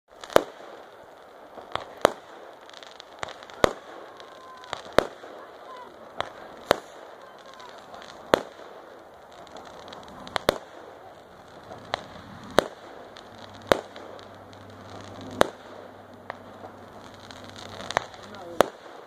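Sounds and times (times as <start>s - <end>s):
fireworks bangs: 0.1s - 19.0s.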